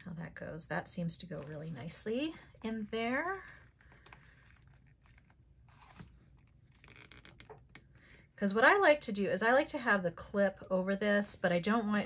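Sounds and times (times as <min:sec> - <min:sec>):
soft creaks of leather: 0:03.5 - 0:07.8.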